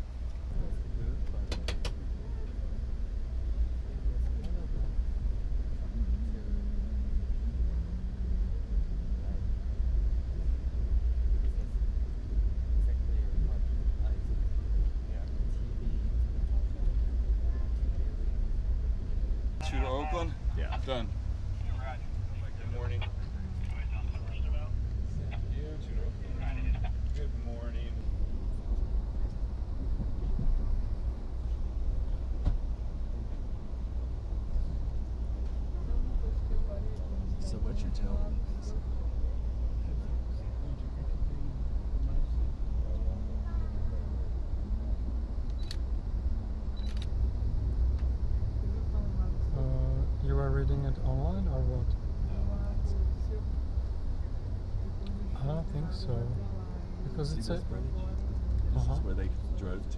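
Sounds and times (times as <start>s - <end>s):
quiet voices talking: 0.0s - 59.9s
train rumble from inside coach: 0.0s - 59.9s.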